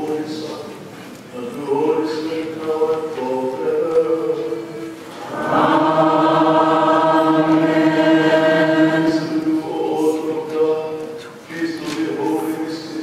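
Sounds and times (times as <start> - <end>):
voices singing a long held note: 4.7 - 10.6
voices chanting: 5.1 - 10.9.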